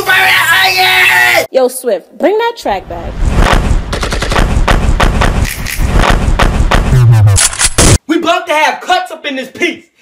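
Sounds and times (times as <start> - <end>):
rapid sharp bangs: 3.4 - 8.0.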